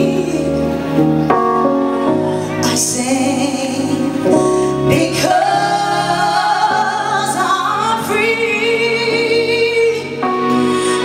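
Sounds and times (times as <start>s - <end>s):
woman singing gospel song: 2.6s - 10.3s.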